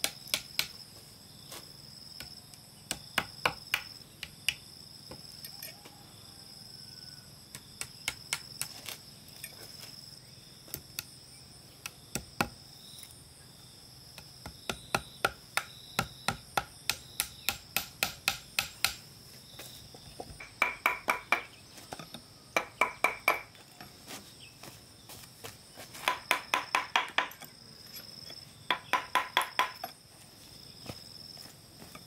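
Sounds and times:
high chirring of insects: 0.0 - 32.0.

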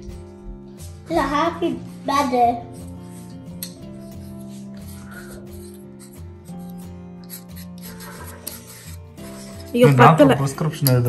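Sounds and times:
chalk scratching on paper: 1.8 - 10.3.

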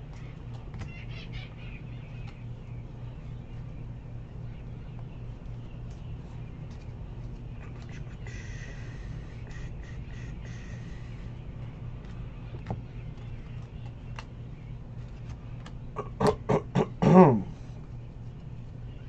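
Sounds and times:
cards being flipped through: 0.0 - 0.9, 5.8 - 8.0, 12.0 - 15.8
low electrical hum: 0.0 - 19.0.

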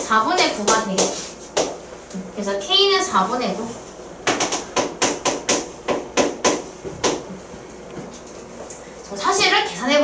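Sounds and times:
marker tapping on writing board: 4.2 - 7.2.

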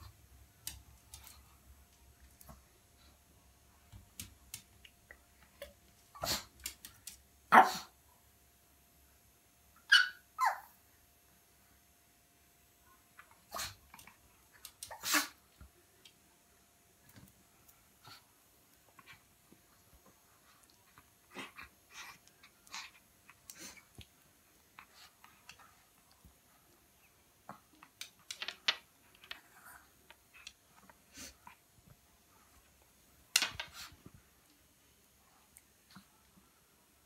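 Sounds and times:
paws clicking on tiled floor: 3.8 - 7.3.

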